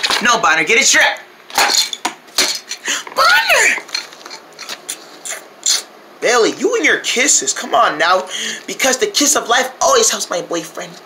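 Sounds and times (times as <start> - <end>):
person's rising and falling vocal: 2.9 - 3.8.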